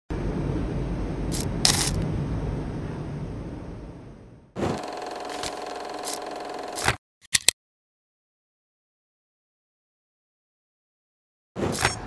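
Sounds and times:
low rumble: 0.1s - 4.6s
mechanical whirring hum: 0.1s - 7.0s.

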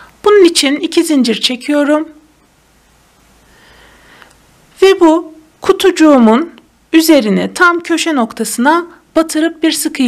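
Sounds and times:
faint soft hiss: 0.0s - 10.0s.

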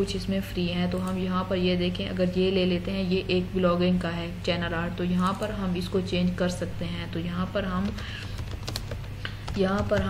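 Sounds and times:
woman speaking: 0.0s - 8.1s, 9.5s - 10.0s.

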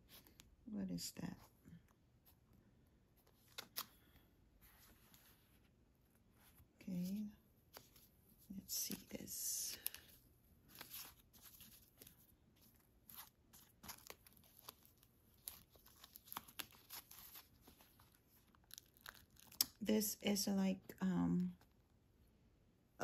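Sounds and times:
tissue paper crinkling and tearing: 8.7s - 19.8s.

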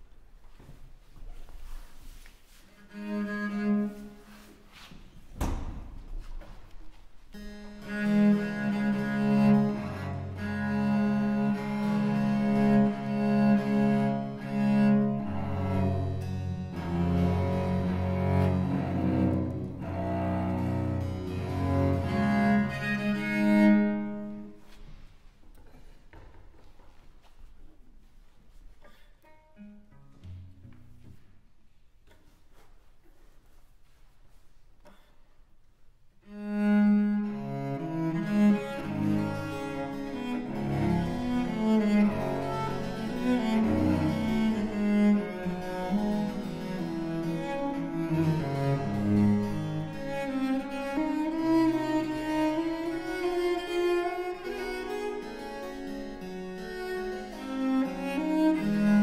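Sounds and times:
bowed cello notes: 2.5s - 4.9s, 7.3s - 25.1s, 36.2s - 59.0s
knock: 5.4s - 6.3s.

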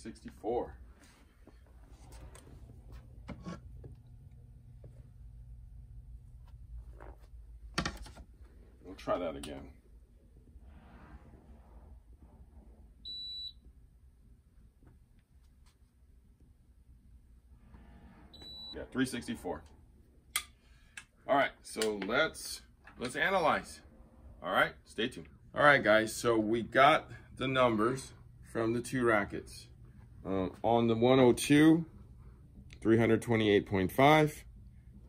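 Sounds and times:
steady low hum: 0.0s - 35.0s
short electronic beep: 18.3s - 18.8s
man speaking: 21.3s - 31.9s, 32.7s - 34.5s.

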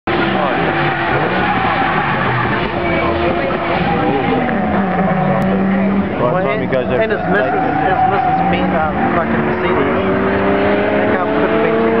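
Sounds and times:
car engine at high revs: 0.1s - 12.0s
spectators talking: 0.1s - 12.0s.

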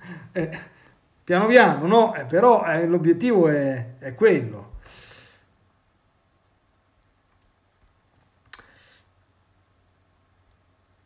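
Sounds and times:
short hiss: 8.5s - 9.1s.

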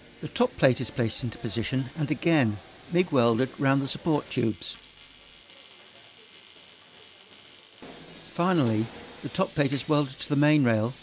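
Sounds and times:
welding arc hiss: 0.0s - 11.0s.

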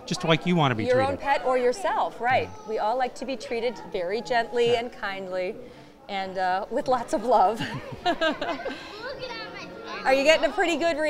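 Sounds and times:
children chattering: 0.0s - 11.0s.

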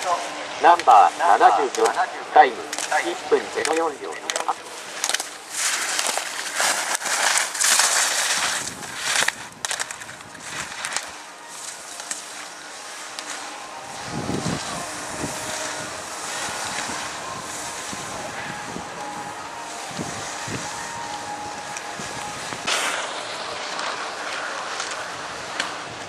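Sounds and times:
skis scraping on snow: 0.0s - 26.0s.

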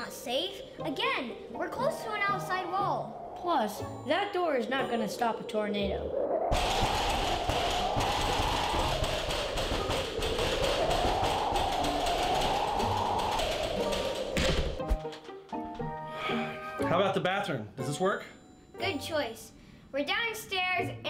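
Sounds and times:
steady rushing noise: 0.0s - 15.0s
storm wind howl: 0.0s - 15.1s.

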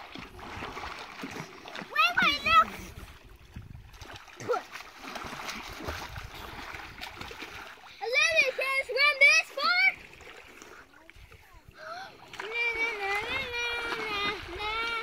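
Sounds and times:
water splashing: 0.0s - 15.0s
child calling out: 1.9s - 2.8s.

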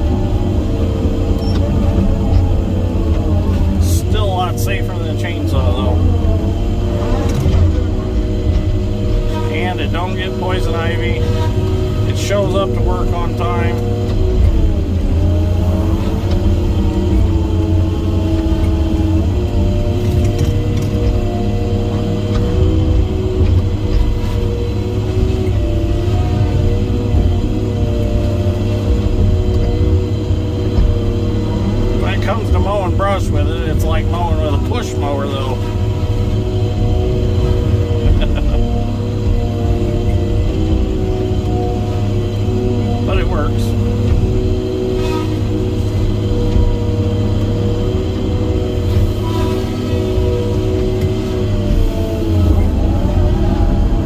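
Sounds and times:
diesel engine and hydraulics: 0.0s - 54.0s.

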